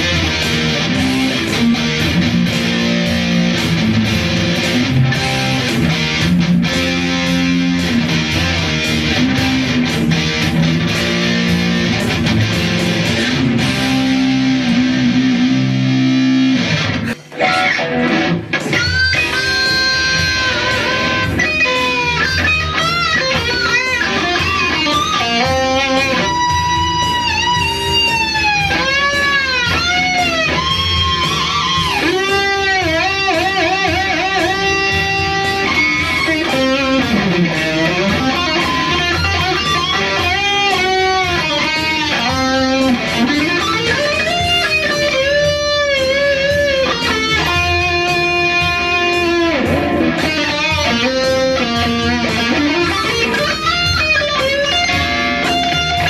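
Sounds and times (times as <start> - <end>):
electric guitar solo: 0.0 - 56.0.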